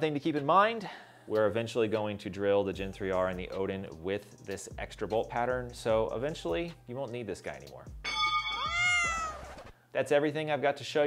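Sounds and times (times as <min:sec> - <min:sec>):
cat meowing: 0:08.6 - 0:09.7.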